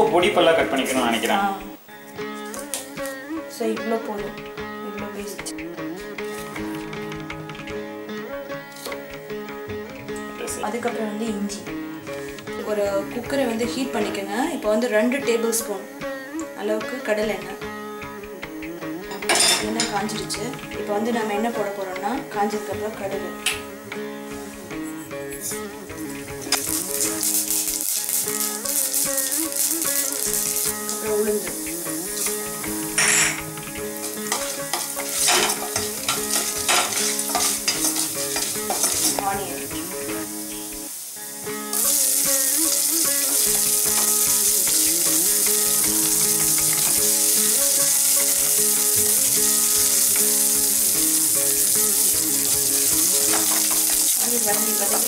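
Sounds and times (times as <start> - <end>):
food sizzling: 0.0 - 55.0
seeds popping in hot oil: 26.0 - 39.5, 40.3 - 55.0.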